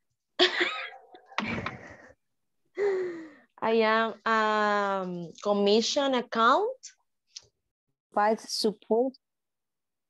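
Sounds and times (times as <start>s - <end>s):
person gasping: 2.8s - 3.5s.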